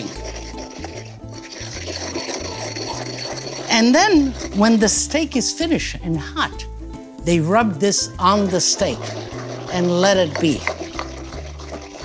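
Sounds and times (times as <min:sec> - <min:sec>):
pestle grinding in mortar: 0:00.0 - 0:06.6, 0:07.3 - 0:12.0
soft background music: 0:00.0 - 0:12.0.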